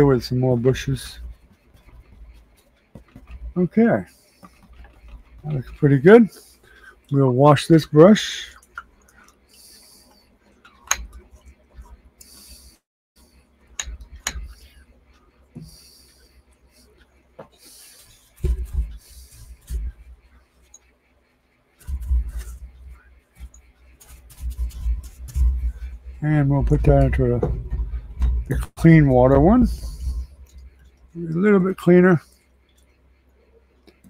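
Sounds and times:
dull bumps and knocks: 1.1s - 3.6s, 17.4s - 20.3s, 21.8s - 30.8s.

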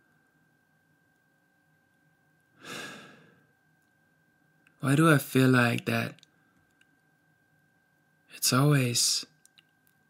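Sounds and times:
man sighing: 2.6s - 3.4s.

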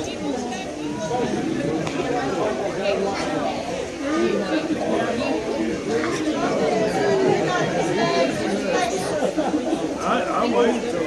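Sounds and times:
people talking at once: 0.0s - 11.0s.

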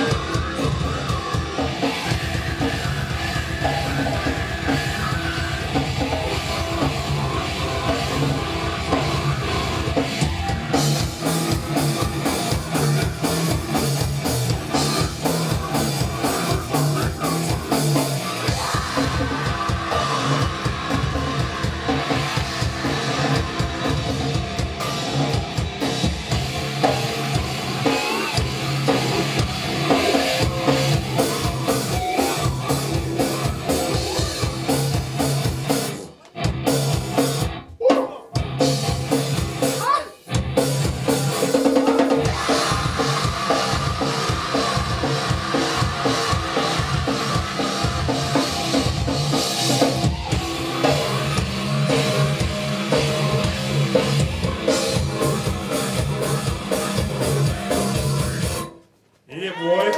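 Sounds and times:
grindcore band playing loud: 0.0s - 58.9s.

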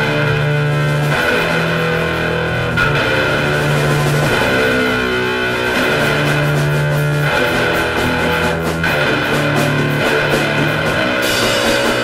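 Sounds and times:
distorted guitar and bass: 0.0s - 12.0s.

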